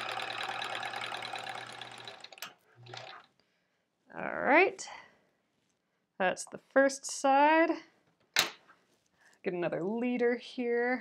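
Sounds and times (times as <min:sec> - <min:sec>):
sewing machine running: 0:00.0 - 0:03.3.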